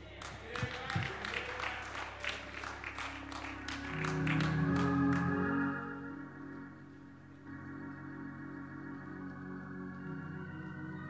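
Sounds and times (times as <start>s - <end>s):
people applauding: 0.0s - 5.6s
sustained keyboard chord: 2.7s - 11.0s.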